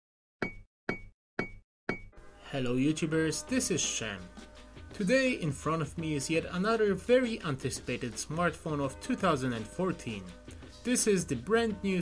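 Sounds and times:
sharp knocks with high ring: 0.4 - 2.2.

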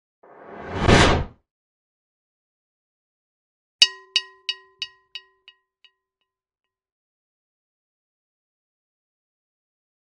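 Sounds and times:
whoosh sound effect: 0.3 - 1.3.

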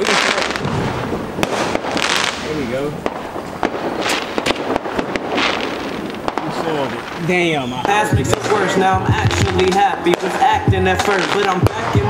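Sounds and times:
fireworks bangs and pops: 0.0 - 12.0
fireworks crackling: 0.0 - 12.0.

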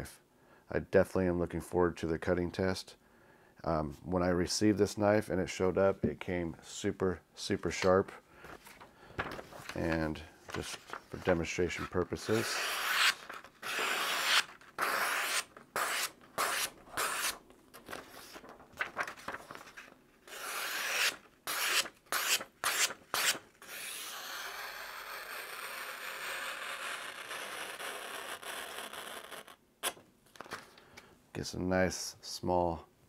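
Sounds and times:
steady paper noise: 8.5 - 24.7
knife slicing paper: 10.6 - 24.0.

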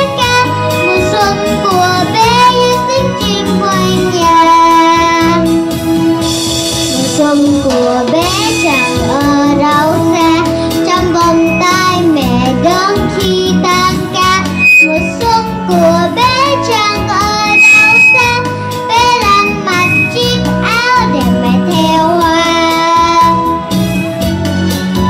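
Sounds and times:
girl singing into a microphone: 0.0 - 5.4, 6.9 - 23.5
instrumental accompaniment with bass: 0.0 - 25.0.

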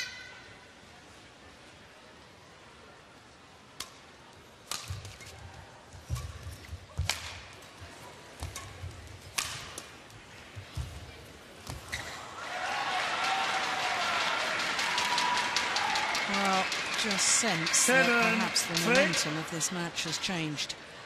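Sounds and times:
racket striking shuttlecock: 4.6 - 5.3, 7.0 - 7.5, 8.4 - 9.9.

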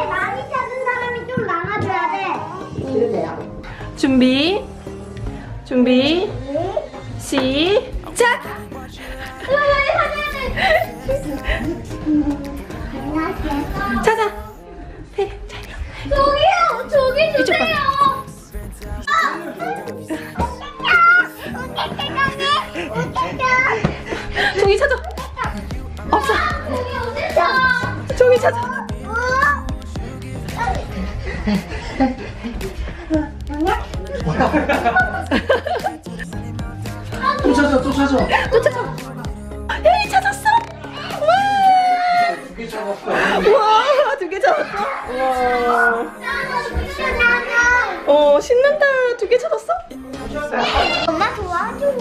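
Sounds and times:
young children chattering and calling: 0.0 - 3.4, 7.8 - 36.1, 36.9 - 39.2, 39.8 - 52.0
background music: 0.0 - 52.0.

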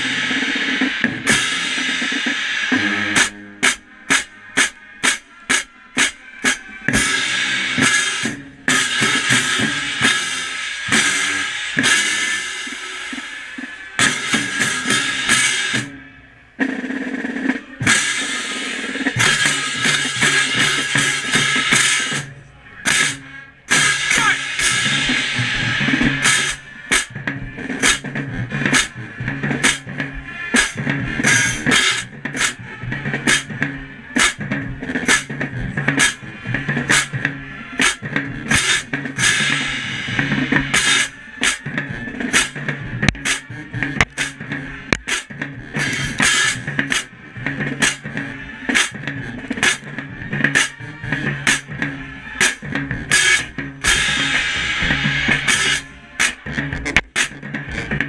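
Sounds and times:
crash cymbals: 0.0 - 16.6, 17.8 - 27.2, 52.4 - 56.4
drums: 0.0 - 58.0
marching band playing: 0.0 - 58.0.

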